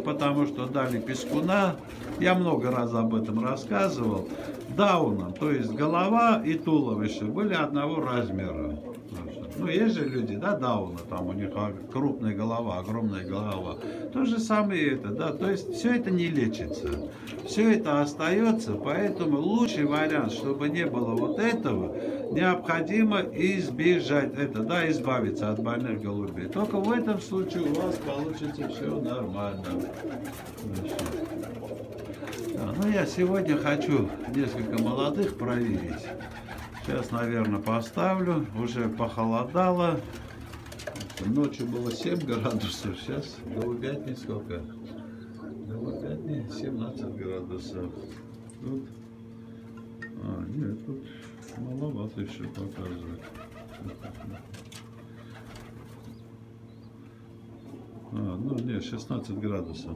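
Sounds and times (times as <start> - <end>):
pigeons cooing: 0.0 - 59.9
steady low hum: 0.0 - 59.9.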